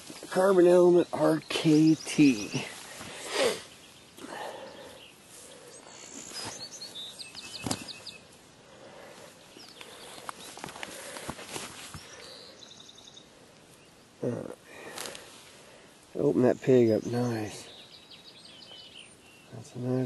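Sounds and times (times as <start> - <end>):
rustling in dry grass: 1.7 - 12.6, 14.8 - 16.1.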